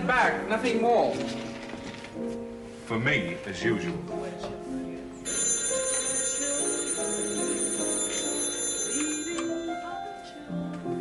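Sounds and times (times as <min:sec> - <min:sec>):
background music: 0:00.0 - 0:11.0
telephone bell ringing: 0:05.3 - 0:10.6.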